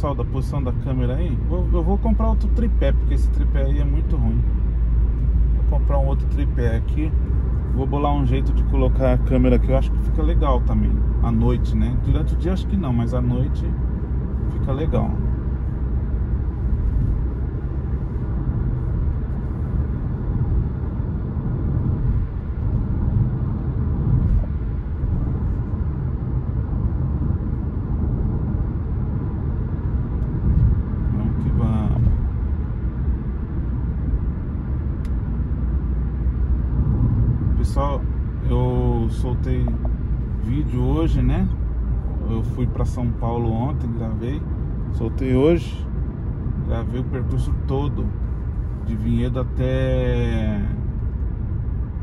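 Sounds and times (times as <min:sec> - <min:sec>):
car cabin road rumble: 0:00.0 - 0:52.0.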